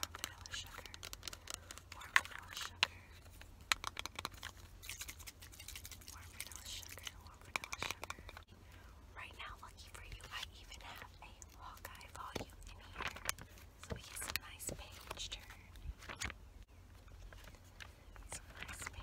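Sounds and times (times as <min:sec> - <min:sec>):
soft whispering: 0:00.0 - 0:03.4, 0:05.9 - 0:16.2, 0:18.0 - 0:19.0
taps and clicks on objects: 0:03.7 - 0:04.5.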